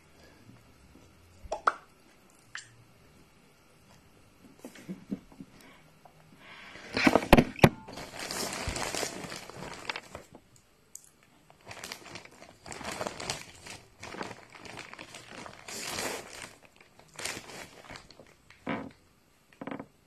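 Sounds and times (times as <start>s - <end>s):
plastic bag crinkling: 6.9s - 10.5s, 11.5s - 19.0s.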